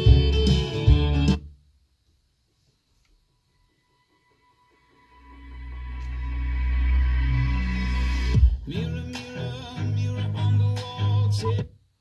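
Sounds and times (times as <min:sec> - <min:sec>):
guitar-led music from car stereo: 0:00.0 - 0:01.4, 0:04.7 - 0:11.7
song with deep bass swell: 0:05.0 - 0:11.4.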